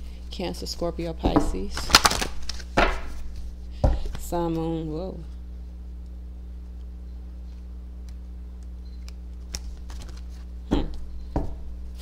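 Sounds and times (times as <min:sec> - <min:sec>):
cards riffle shuffling: 0:01.8 - 0:03.5, 0:09.0 - 0:10.5.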